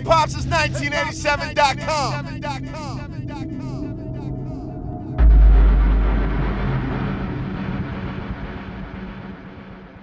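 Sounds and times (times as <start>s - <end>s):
deep boom rumble: 5.2s - 10.0s.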